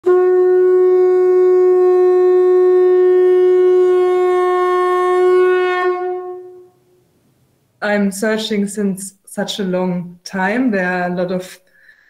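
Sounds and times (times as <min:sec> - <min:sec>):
long steady horn note: 0:00.0 - 0:07.0.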